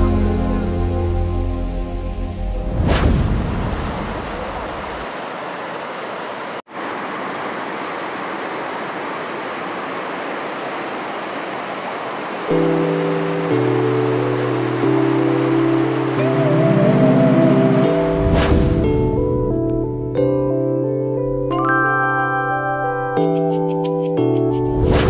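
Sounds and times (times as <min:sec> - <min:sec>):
background music of held chords: 0:00.0 - 0:02.8, 0:12.5 - 0:25.0.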